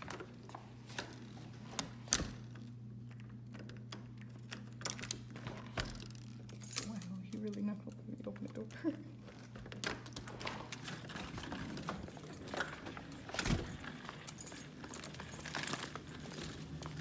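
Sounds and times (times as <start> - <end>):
keys jangling on a key ring: 5.9 - 9.0, 12.0 - 17.0.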